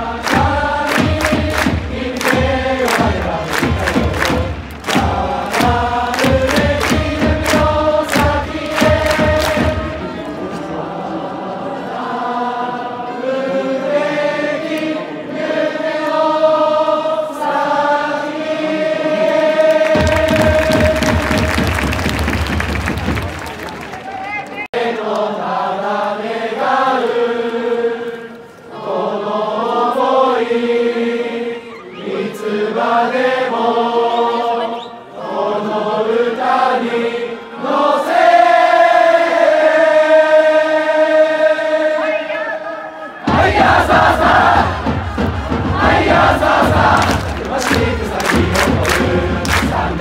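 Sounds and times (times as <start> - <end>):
crowd singing in unison: 0.0 - 22.4, 24.7 - 50.0
crowd chanting: 0.0 - 24.0, 24.6 - 50.0.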